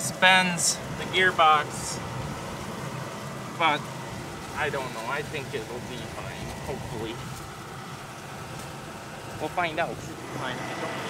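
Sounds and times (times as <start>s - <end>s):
combine engine idling: 0.0s - 11.0s.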